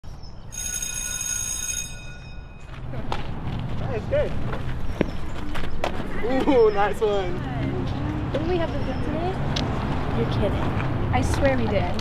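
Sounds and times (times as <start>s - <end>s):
electric school bell ringing: 0.5s - 2.8s.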